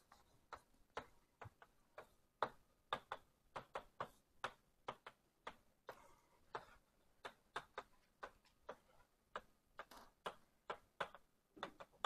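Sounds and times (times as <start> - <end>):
taps and clicks of writing on board: 0.0 - 12.0.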